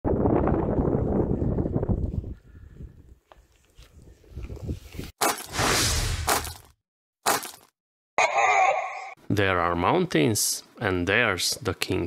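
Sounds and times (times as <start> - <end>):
wind buffeting microphone: 0.0 - 3.2, 3.9 - 5.1.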